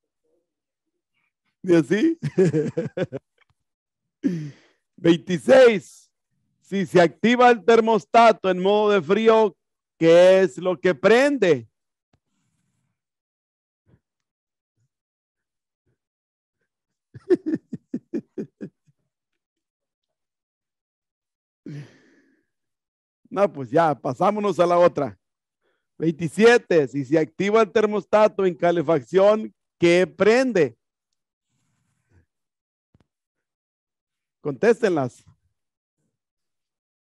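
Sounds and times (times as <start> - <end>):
man sighing: 4.2 - 4.8, 21.7 - 22.2.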